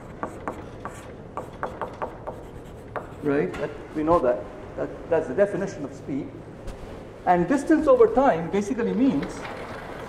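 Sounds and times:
chalk tapping and scratching on blackboard: 0.0 - 4.3.

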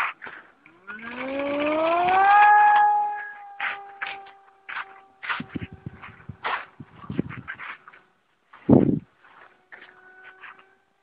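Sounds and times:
model airplane motor whine: 0.5 - 7.2.

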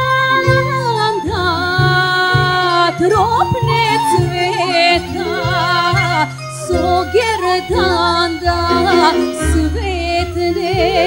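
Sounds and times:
flute: 0.0 - 11.0
woman singing: 0.0 - 11.0
plucked string instrument: 2.4 - 11.0
bass line: 7.8 - 11.0.

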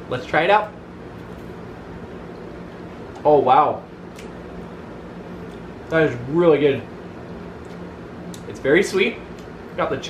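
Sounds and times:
low hum with faint hiss: 0.0 - 10.0.

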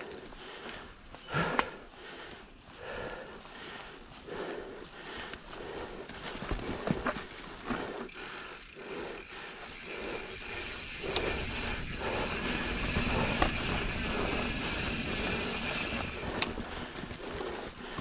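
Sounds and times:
bike tyres on dirt trail: 0.0 - 18.0
bike knocks and rattles: 10.7 - 17.1.

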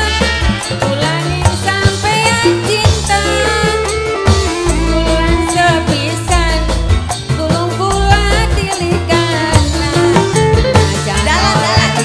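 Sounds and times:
live band music: 0.0 - 12.0
steady bass line: 0.0 - 12.0
woman singing into a microphone: 0.0 - 12.0.

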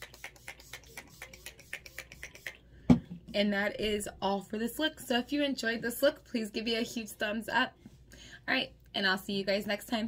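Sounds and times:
spray bottle spritzes: 0.0 - 2.6.

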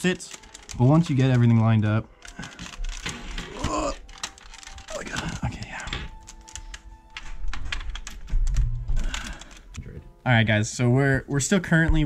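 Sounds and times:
clicks and taps of plastic parts: 0.3 - 9.9.

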